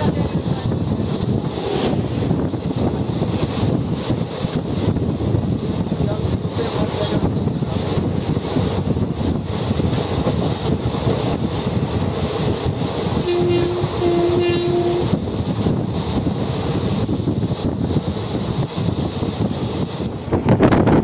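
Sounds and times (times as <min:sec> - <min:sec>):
train rumble inside carriage: 0:00.0 - 0:21.0
train horn blasts: 0:13.2 - 0:15.2.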